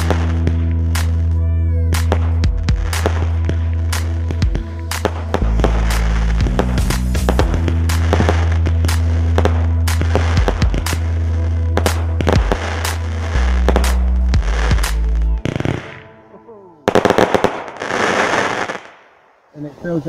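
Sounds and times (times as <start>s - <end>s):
fireworks banging and crackling: 0.0s - 1.3s, 1.9s - 16.1s, 16.9s - 19.2s
background music: 0.0s - 20.0s.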